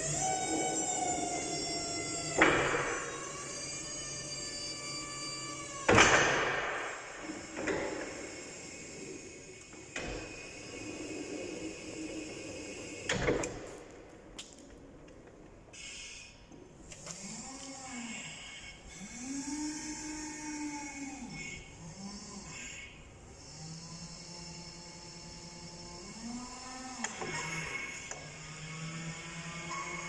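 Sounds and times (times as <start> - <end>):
hydraulic pump motor whining: 0.0 - 30.0.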